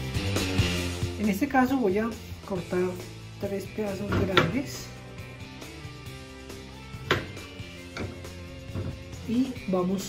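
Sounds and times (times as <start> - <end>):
background music with held tones: 0.0 - 10.0
knife knocking on cutting board: 7.1 - 7.4.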